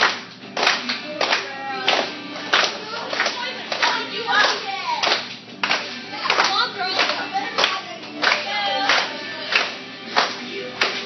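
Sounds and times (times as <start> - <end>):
kids clapping in unison: 0.0 - 11.0
worship song with singing: 0.7 - 4.3, 5.8 - 11.0.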